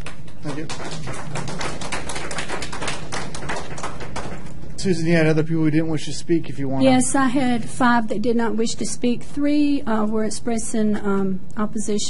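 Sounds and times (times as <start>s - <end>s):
audience applauding: 0.0s - 4.6s.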